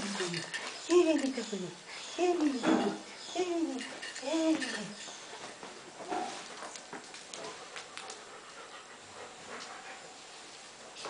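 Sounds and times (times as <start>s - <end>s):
dog panting: 7.4s - 10.2s.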